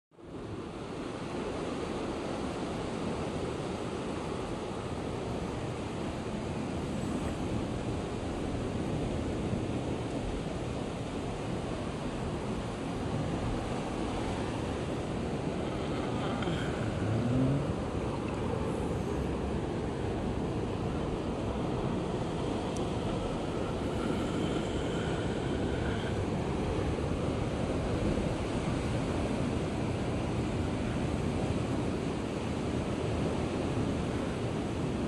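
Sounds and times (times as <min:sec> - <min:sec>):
ocean surf: 0:00.2 - 0:35.0.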